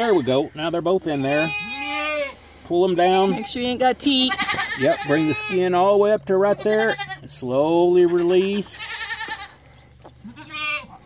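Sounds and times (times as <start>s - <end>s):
goat bleating: 0.0s - 11.0s.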